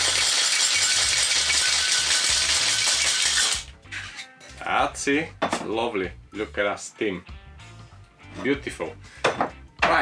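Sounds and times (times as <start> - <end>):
ice rattling in cocktail shaker: 0.0 - 3.7.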